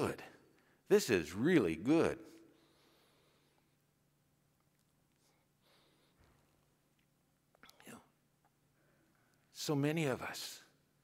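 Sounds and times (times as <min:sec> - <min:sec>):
faint low hum: 0:00.0 - 0:11.0
man speaking softly: 0:07.6 - 0:08.2, 0:09.5 - 0:10.8.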